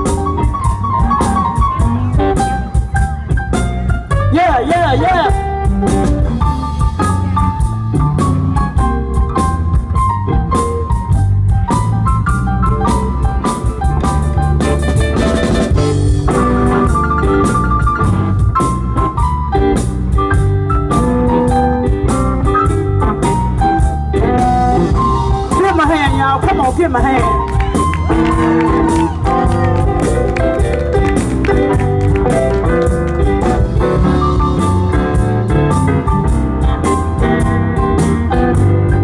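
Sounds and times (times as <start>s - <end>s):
blues band playing: 0.0s - 39.0s.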